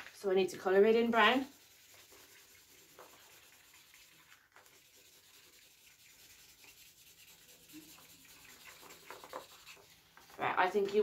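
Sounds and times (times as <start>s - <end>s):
colouring scribbling on paper: 0.5s - 11.0s.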